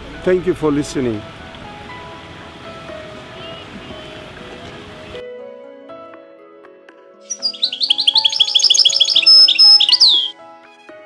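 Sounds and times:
soft music with sustained notes: 0.0 - 11.0
songbird chirping: 7.3 - 10.3.

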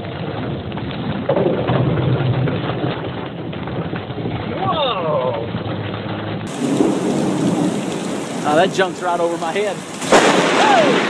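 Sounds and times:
steady rain: 0.0 - 11.0
thunder boom and rumble: 0.0 - 11.0
person shouting: 4.6 - 5.4, 10.4 - 11.0.

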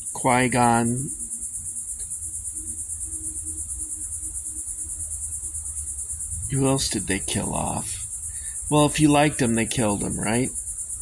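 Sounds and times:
insects trilling: 0.0 - 11.0
low steady hum: 0.0 - 11.0.

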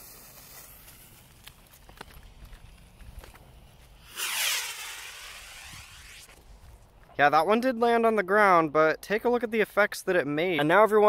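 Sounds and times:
rocket launching with rushing hiss: 0.0 - 1.3, 4.0 - 6.5
firework fuse fizzing: 0.0 - 6.5.

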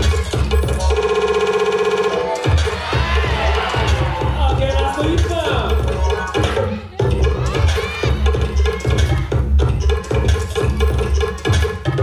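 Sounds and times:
loud hip-hop music: 0.0 - 12.0.

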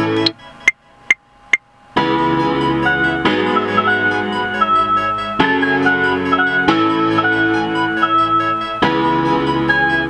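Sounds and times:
electronic keyboard organ chords: 0.0 - 0.7, 1.9 - 10.0.

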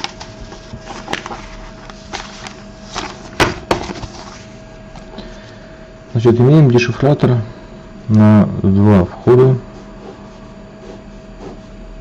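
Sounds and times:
faint hum: 0.0 - 12.0
pen scratching on paper: 9.7 - 11.7.

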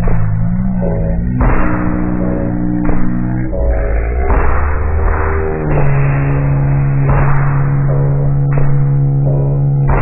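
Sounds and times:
slowed music drone: 0.0 - 10.0
strong low tone: 0.0 - 10.0.

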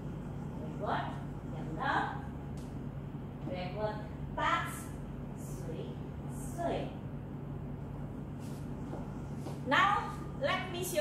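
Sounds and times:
steady low hum: 0.0 - 11.0
woman speaking: 0.6 - 2.4, 3.4 - 7.0, 9.6 - 11.0.

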